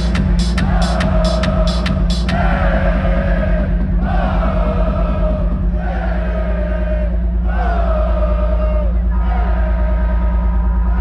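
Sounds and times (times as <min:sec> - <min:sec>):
electronic dance music: 0:00.0 - 0:05.7.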